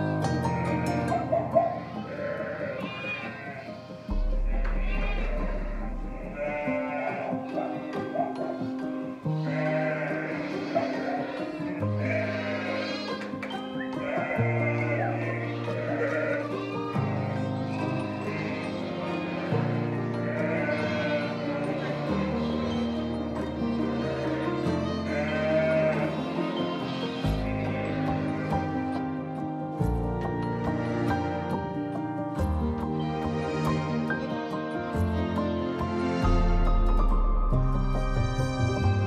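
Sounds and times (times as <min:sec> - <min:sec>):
music with slow held chords: 0:00.0 - 0:39.0
sheep bleating: 0:01.2 - 0:08.5, 0:09.3 - 0:29.1.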